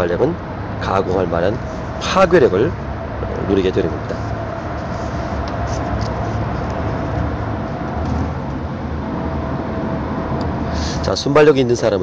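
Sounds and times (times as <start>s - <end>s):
low hum: 0.0s - 11.1s.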